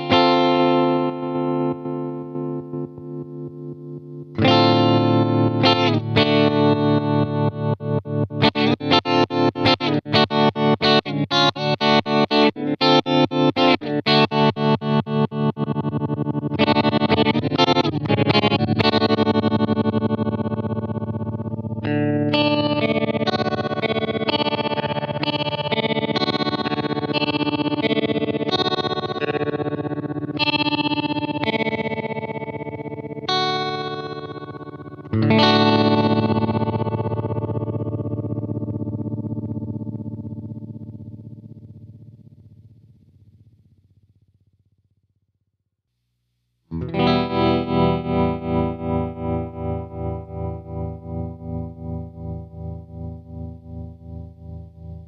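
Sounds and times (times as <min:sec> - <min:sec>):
electric guitar with tremolo: 0:00.0 - 0:43.8, 0:46.7 - 0:55.0.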